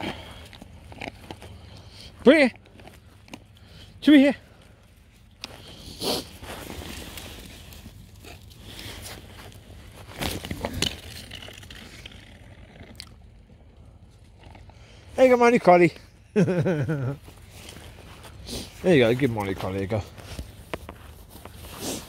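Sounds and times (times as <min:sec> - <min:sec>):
footsteps: 0:04.6 - 0:11.9, 0:17.2 - 0:22.0
rustling scraping handling noise: 0:05.0 - 0:13.4, 0:17.2 - 0:22.0.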